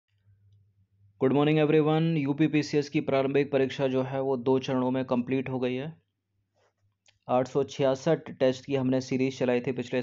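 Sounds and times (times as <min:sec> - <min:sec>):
man speaking: 0:01.2 - 0:06.1, 0:07.2 - 0:10.0.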